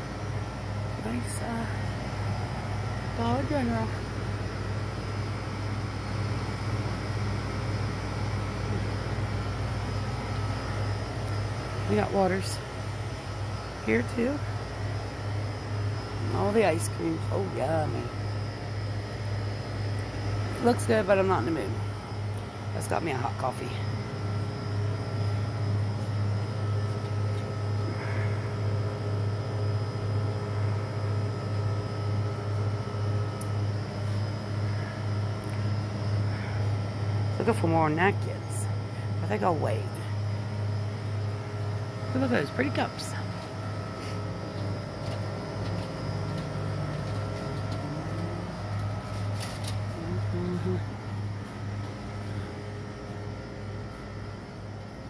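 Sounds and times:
refrigerated coolers humming: 0.0s - 55.0s.

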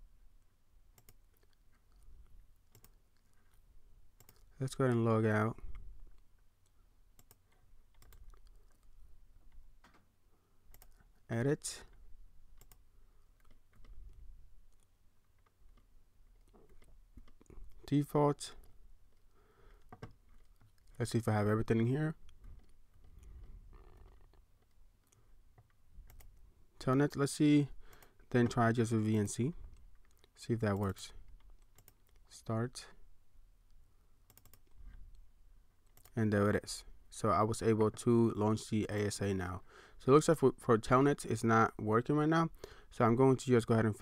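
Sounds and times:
computer mouse and keyboard clicks: 1.0s - 3.6s, 4.2s - 5.0s, 7.2s - 8.9s, 11.9s - 12.8s, 22.3s - 26.4s, 29.7s - 32.3s, 34.3s - 35.0s.

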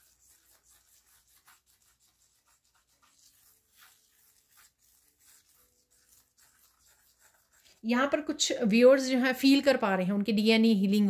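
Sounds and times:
fingertip scratching through sand: 0.0s - 7.8s.

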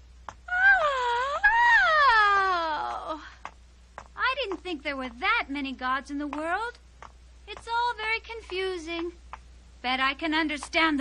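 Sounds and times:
cartoon girl crying out: 0.5s - 3.2s.

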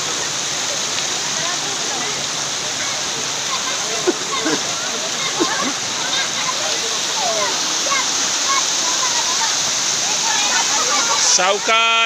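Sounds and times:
water rushing over rocks: 0.0s - 12.0s.

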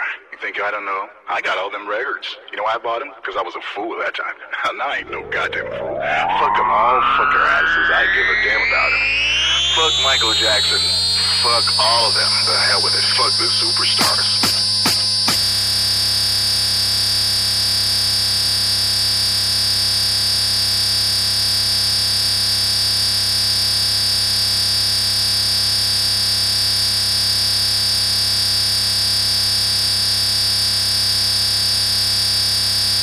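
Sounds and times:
high whine: 4.8s - 33.0s
electronic buzzing drone: 5.0s - 33.0s.

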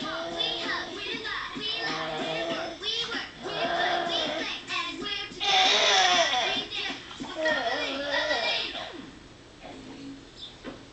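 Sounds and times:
children singing over music: 0.0s - 7.6s.

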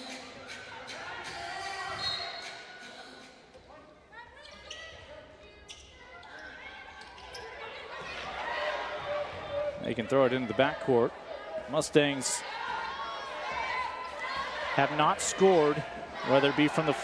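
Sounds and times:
voices calling out: 6.2s - 17.0s.

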